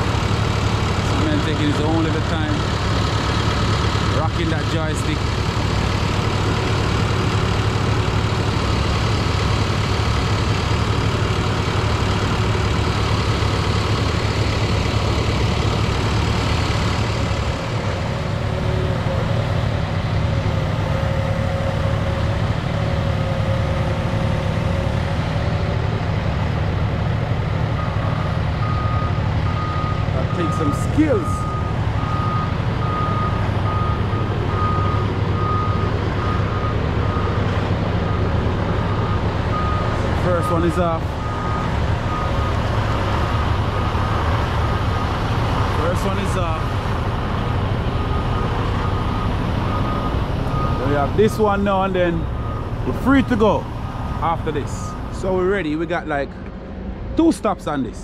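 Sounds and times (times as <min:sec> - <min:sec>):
diesel engine running: 0:00.0 - 0:58.0
reversing alarm beeping: 0:27.8 - 0:44.2, 0:47.8 - 0:55.6.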